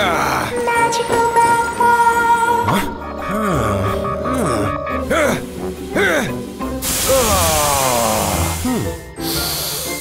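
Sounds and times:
background music: 0:00.0 - 0:10.0
person's long falling ahh: 0:03.3 - 0:09.5
loud steam hiss: 0:04.9 - 0:10.0.

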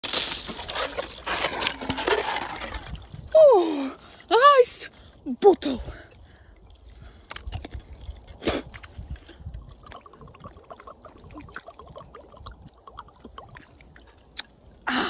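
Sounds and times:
water sloshing and gulping: 0:00.4 - 0:03.4, 0:05.1 - 0:14.8.

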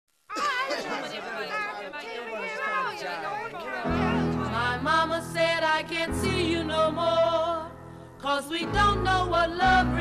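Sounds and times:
indistinct chatter: 0:00.3 - 0:04.7.

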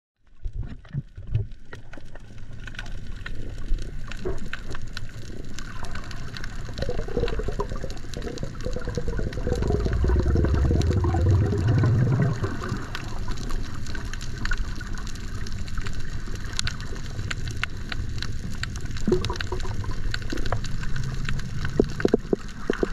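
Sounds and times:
muffled underwater water wash: 0:00.2 - 0:22.9
low rumble: 0:06.8 - 0:13.7.

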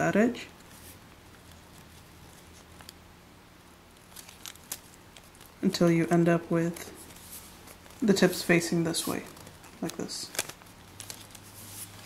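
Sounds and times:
low steady hum: 0:00.0 - 0:12.0
paper rustling and crinkling: 0:00.6 - 0:03.0, 0:03.9 - 0:05.9, 0:06.6 - 0:12.0.

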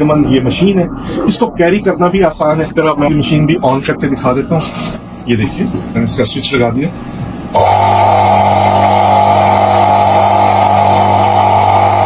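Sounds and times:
pressure washer motor humming: 0:07.5 - 0:12.0.

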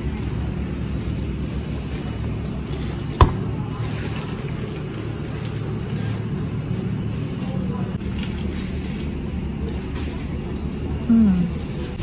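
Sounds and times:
freezer cabinets humming: 0:00.0 - 0:12.0.

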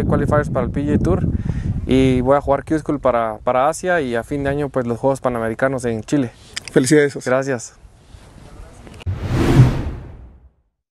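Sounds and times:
deep whoosh: 0:09.0 - 0:10.5.

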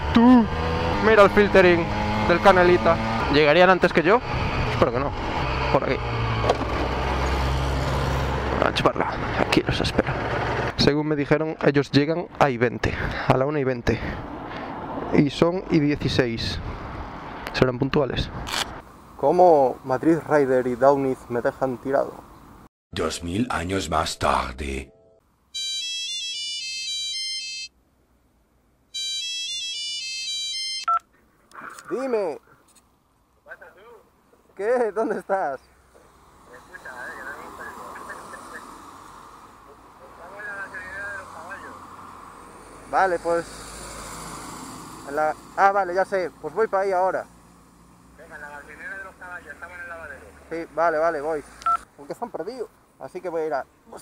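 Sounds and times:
phone ringtone chiming melody: 0:24.9 - 0:27.7, 0:29.0 - 0:31.0.

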